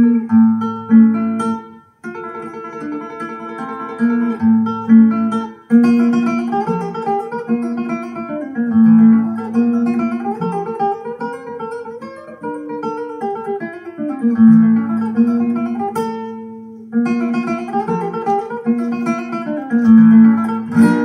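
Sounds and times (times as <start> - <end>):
flamenco guitar from loudspeaker: 0.0 - 21.0.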